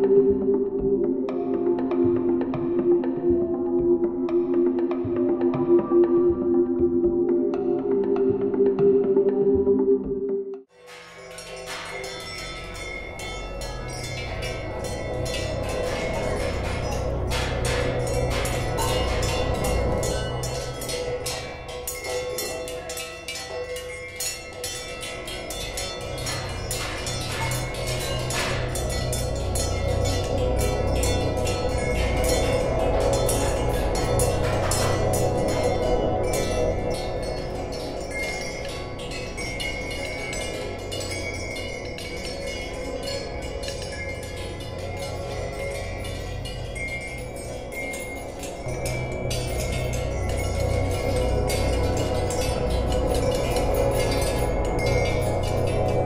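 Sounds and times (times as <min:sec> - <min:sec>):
metal percussion ringing: 0:10.7 - 0:56.0.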